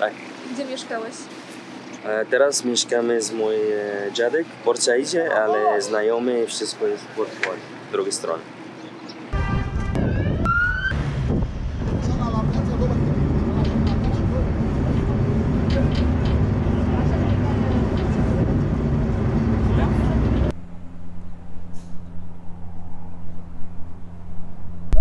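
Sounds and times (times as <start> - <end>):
boat engine rumbling: 0.0 - 25.0
wind: 0.0 - 25.0
short rising whine: 10.0 - 11.3, 18.8 - 25.0.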